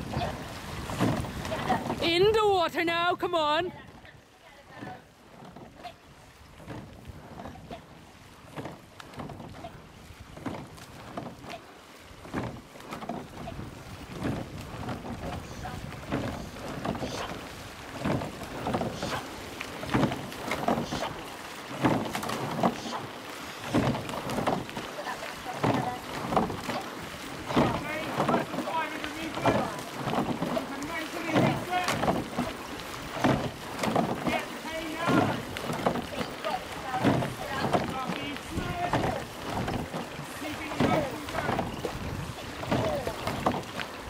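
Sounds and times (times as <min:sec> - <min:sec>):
wind on microphone: 0:00.0 - 0:02.1, 0:13.2 - 0:19.3, 0:36.8 - 0:44.0
oars splashing: 0:00.0 - 0:44.0.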